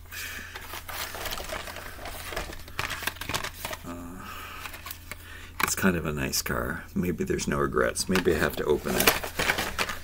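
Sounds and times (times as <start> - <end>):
plastic blister packs crackling: 0.4 - 5.9, 7.9 - 10.0.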